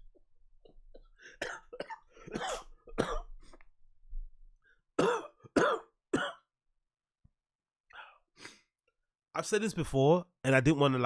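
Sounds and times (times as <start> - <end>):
man coughing: 1.4 - 3.3, 5.0 - 6.5.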